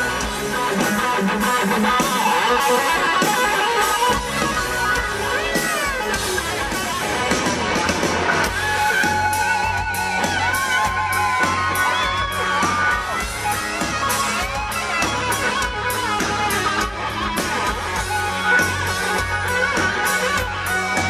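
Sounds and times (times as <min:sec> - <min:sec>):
audience: 0:00.0 - 0:21.0
electric guitar: 0:00.0 - 0:21.0
live rock band playing: 0:00.0 - 0:21.0.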